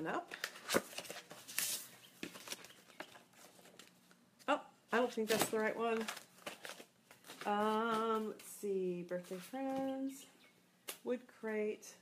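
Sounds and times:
packaging being opened: 5.3 - 7.5.

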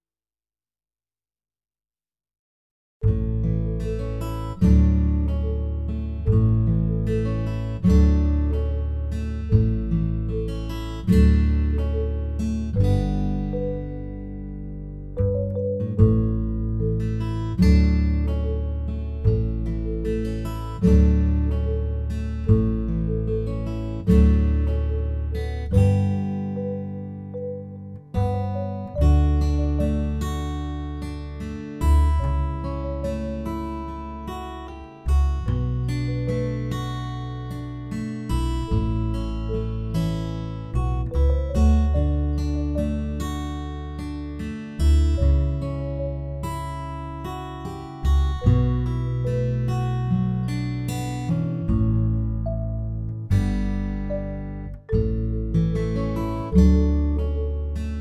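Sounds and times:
acoustic guitar chords: 3.0 - 58.0.

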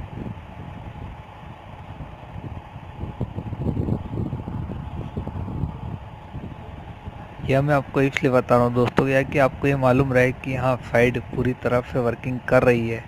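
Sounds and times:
low uneven rumbling: 0.0 - 13.0.

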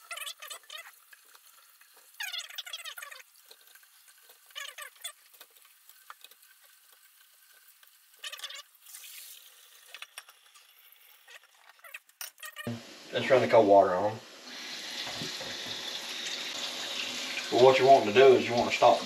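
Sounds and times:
hot water splashing into sink: 0.0 - 11.7, 12.7 - 19.0.

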